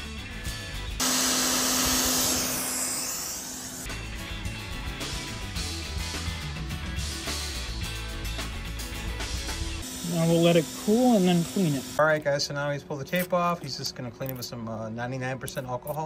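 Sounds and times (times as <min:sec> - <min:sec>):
hot air station blowing: 0:01.0 - 0:03.9, 0:09.8 - 0:12.0
background music with beat: 0:03.9 - 0:09.9.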